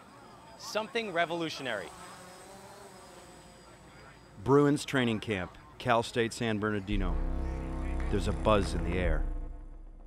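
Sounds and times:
faint buzz of drone propellers: 0.0s - 10.0s.

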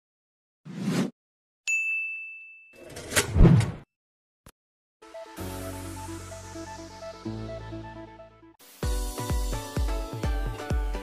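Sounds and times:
ding notification: 1.7s - 2.9s.

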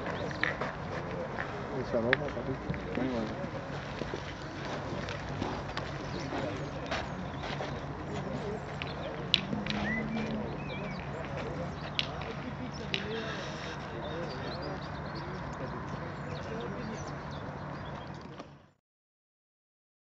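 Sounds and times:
distant murmur of voices: 0.0s - 18.8s.

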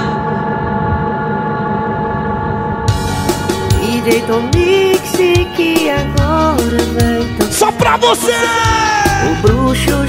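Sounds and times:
low noisy rumble: 0.0s - 5.7s
sustained electronic chord: 0.0s - 10.0s
dance music: 2.9s - 10.0s.

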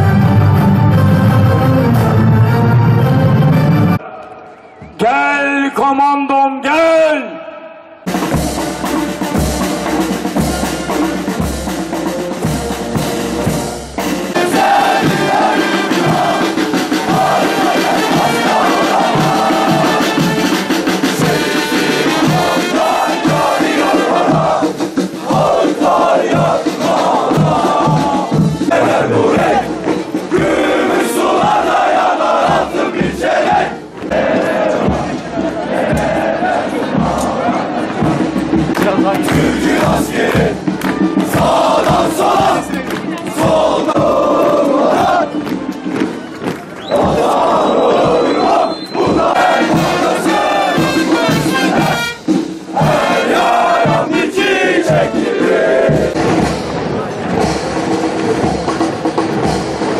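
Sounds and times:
men chanting in unison: 14.4s - 38.1s, 38.8s - 45.4s, 46.9s - 52.0s, 52.7s - 56.2s.

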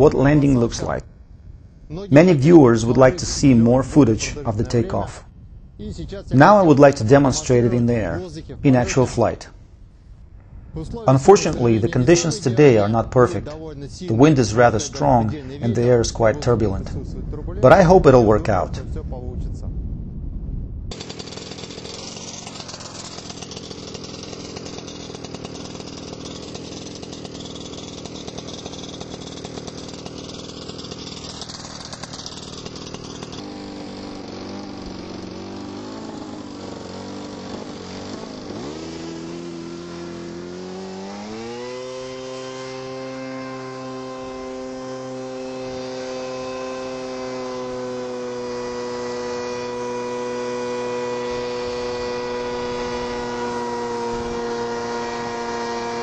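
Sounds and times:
paramotor engine droning: 0.0s - 18.7s, 20.9s - 56.0s.

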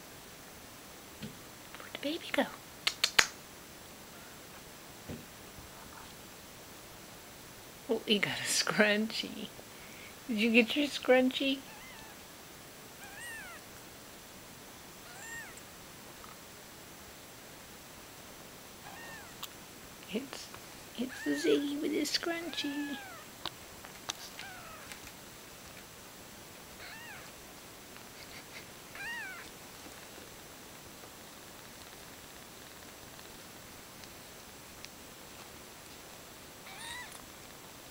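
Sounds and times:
cat meowing: 11.6s - 12.2s, 13.0s - 13.7s, 15.0s - 15.6s, 18.8s - 19.5s, 22.5s - 23.3s, 24.3s - 25.0s, 26.8s - 27.4s, 28.9s - 29.5s, 36.6s - 37.2s.

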